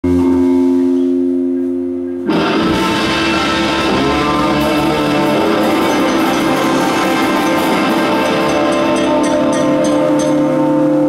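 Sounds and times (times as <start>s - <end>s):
band holding sustained chord: 2.3s - 11.0s.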